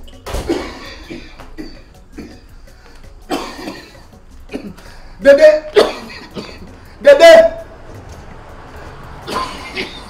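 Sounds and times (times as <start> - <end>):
faint background music: 0.0 - 10.0
person coughing: 0.4 - 2.6, 3.2 - 5.0, 5.7 - 6.8, 9.3 - 10.0.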